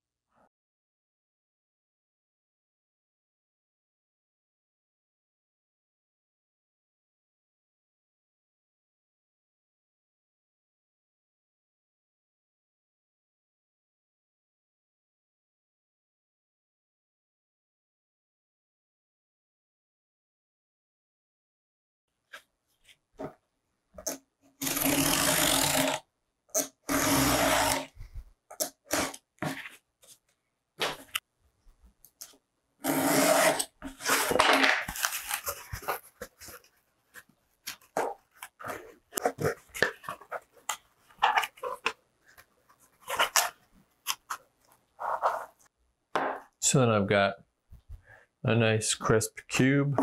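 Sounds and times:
cardboard being handled and folded: 26.9s - 45.7s
knife scoring cardboard: 32.8s - 45.6s.

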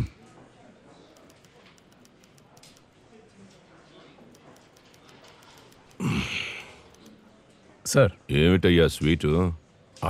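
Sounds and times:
man sighing heavily: 6.0s - 6.8s.

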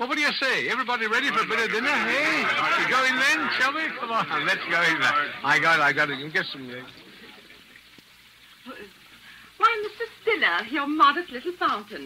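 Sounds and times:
fountain splashing: 0.2s - 12.0s
murmur of a voice: 0.9s - 7.4s.

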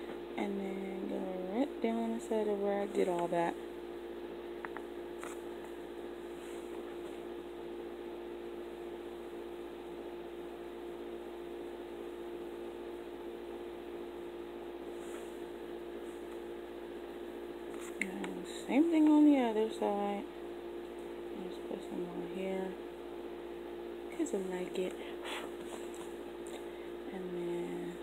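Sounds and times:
room hum: 0.0s - 28.0s.

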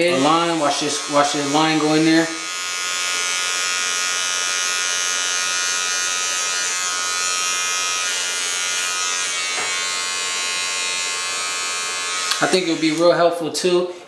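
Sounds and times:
hair trimmer buzzing: 0.0s - 14.0s.

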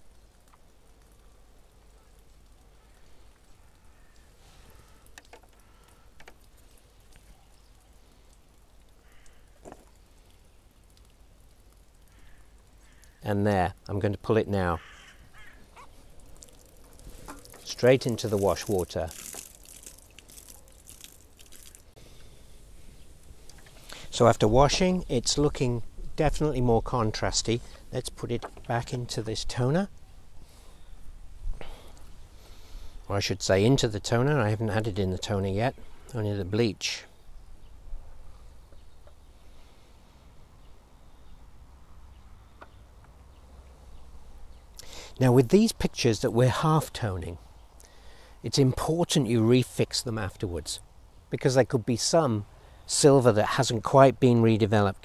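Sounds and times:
faint short animal calls: 14.8s - 16.0s.

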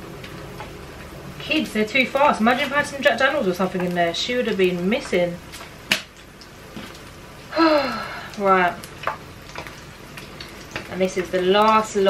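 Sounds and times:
batter sizzling in hot oil: 0.0s - 12.0s.

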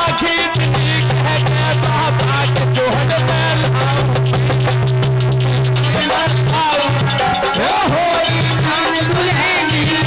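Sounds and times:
man singing through microphone: 0.0s - 4.6s, 5.9s - 10.0s
hand drum: 0.0s - 10.0s.

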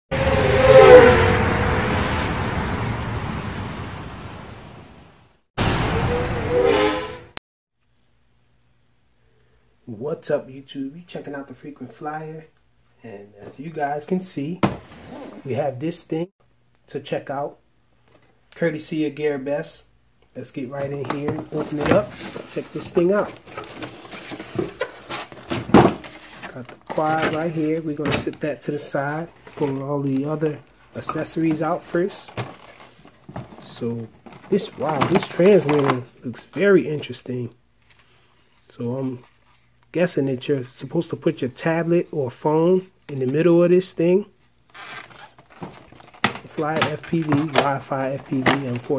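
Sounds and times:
vehicle rushing past: 0.1s - 7.3s
plastic tray and cardboard rustling: 20.7s - 37.2s, 44.7s - 48.9s.

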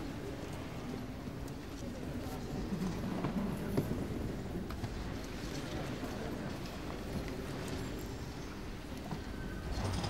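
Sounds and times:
murmur of distant voices: 0.0s - 10.0s.

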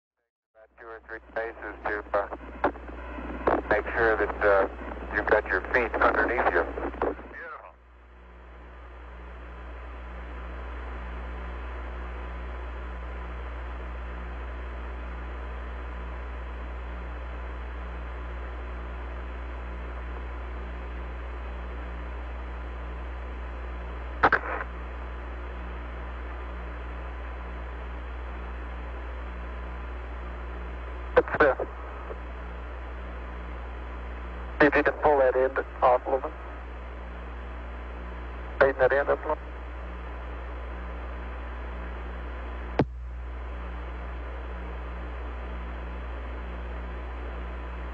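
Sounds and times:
deep hum: 0.6s - 38.6s, 39.3s - 47.9s
radio static and hiss: 0.6s - 47.9s
spoken word: 7.4s - 7.7s.

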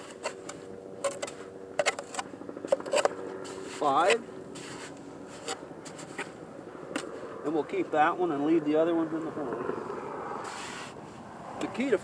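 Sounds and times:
shovel scraping wet mud: 0.0s - 6.3s, 10.4s - 11.0s.

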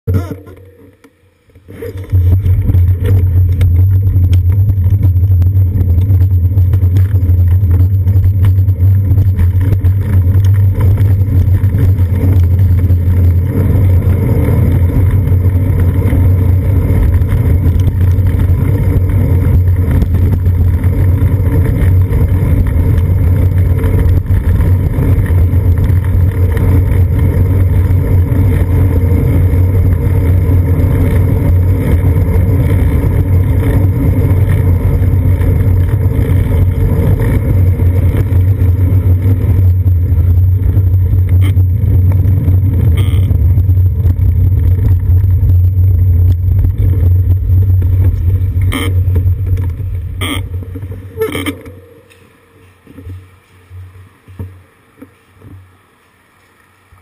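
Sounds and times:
road vibration rumble: 0.0s - 57.0s.

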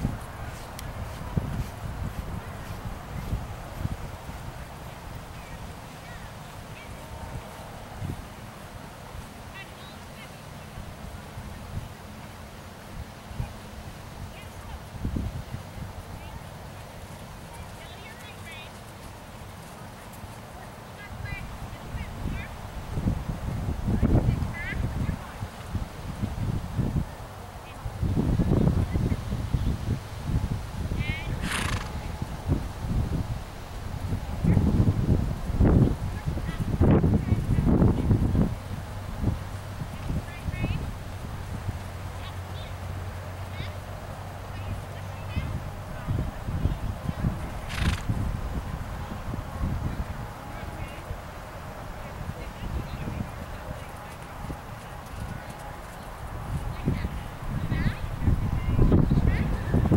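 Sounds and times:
wind buffeting microphone: 0.0s - 9.3s, 12.9s - 18.9s, 21.0s - 59.9s.

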